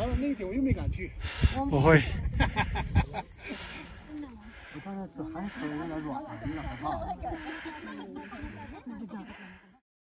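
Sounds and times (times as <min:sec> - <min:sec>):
wind rumble on microphone: 0:00.0 - 0:03.2
people talking indistinctly: 0:00.0 - 0:09.8.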